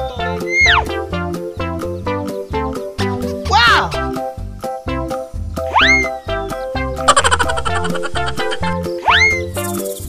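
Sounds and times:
upbeat children's music: 0.0 - 10.0
cartoon swoop sound effect: 5.7 - 6.2, 7.8 - 9.5.

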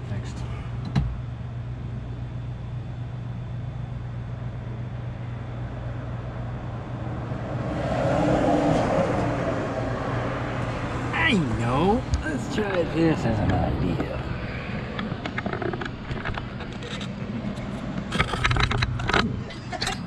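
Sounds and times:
golf cart humming: 4.7 - 20.0
rush of vehicle noise: 5.8 - 20.0.

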